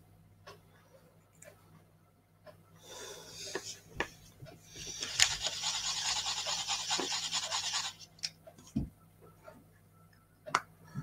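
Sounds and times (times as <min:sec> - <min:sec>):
stick scraping paint in foil dish: 0:04.9 - 0:08.1.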